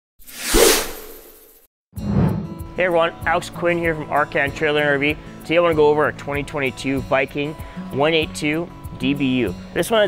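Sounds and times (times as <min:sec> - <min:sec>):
whoosh: 0:00.2 - 0:02.6.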